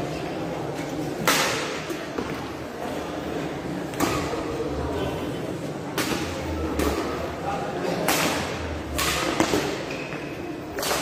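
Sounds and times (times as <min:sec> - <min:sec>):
racket hitting shuttlecock: 0:01.2 - 0:02.3, 0:08.0 - 0:11.0.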